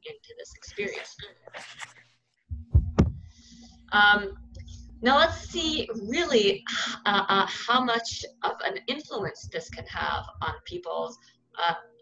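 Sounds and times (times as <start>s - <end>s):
low steady hum: 0.0s - 12.0s
dull low thumps: 2.5s - 6.5s, 9.1s - 10.8s.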